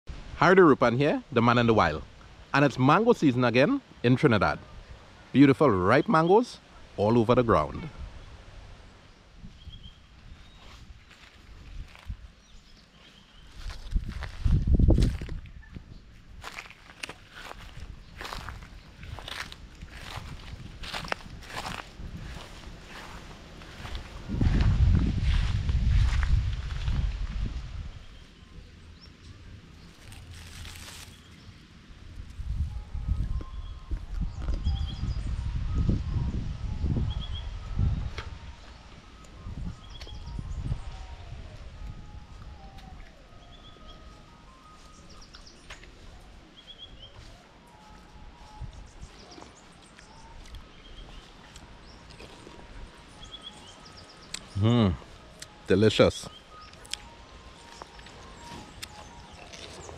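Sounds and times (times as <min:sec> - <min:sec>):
low rumbling microphone noise: 0:06.6 - 0:43.1
small birds chirping: 0:09.2 - 0:24.6, 0:32.5 - 0:37.9, 0:38.5 - 0:59.9
footsteps through dry grass: 0:09.6 - 0:28.3, 0:29.7 - 0:31.5, 0:39.8 - 0:55.8, 0:56.5 - 0:59.9.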